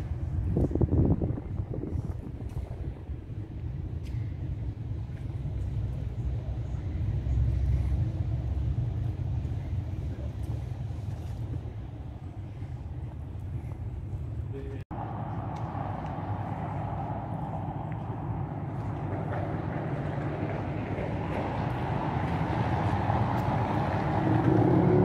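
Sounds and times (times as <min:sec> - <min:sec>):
low street rumble: 0:00.0 - 0:25.0.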